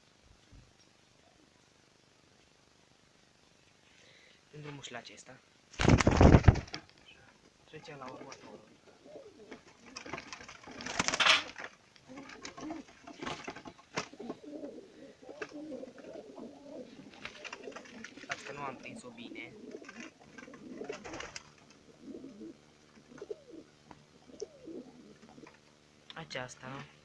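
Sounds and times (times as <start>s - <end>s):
pigeons cooing: 8.1s - 25.7s
knocks and clatters of birds handled: 9.5s - 14.4s, 17.1s - 18.8s.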